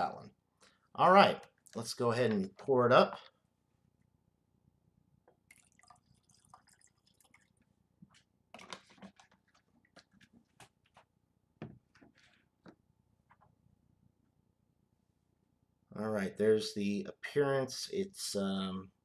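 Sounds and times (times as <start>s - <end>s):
liquid pouring into a glass: 5.4s - 7.7s.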